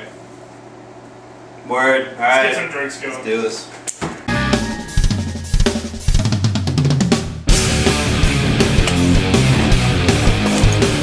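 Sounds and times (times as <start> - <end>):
drum kit playing: 4.3 - 11.0
rock music: 4.3 - 11.0.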